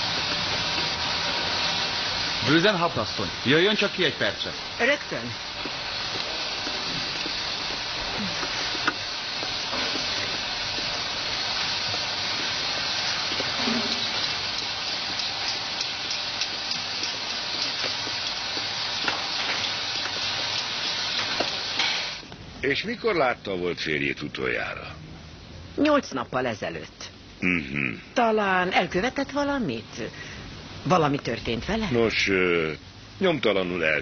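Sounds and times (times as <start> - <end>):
steady hissing noise: 0.0 - 34.0.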